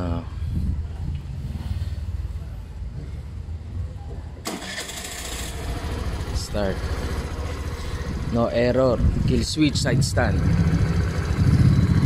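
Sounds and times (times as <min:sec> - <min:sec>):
scooter engine starting and running: 0:04.4 - 0:09.2, 0:10.3 - 0:12.0.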